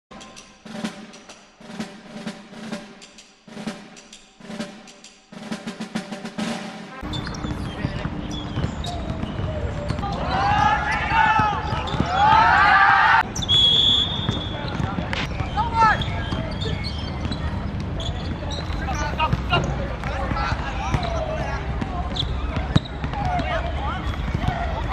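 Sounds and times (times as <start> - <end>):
title music with drum rolls: 0.6 - 7.0
players shouting: 7.6 - 17.3, 18.0 - 24.9
team shouting together: 10.2 - 13.2
whistle blast: 13.3 - 17.2.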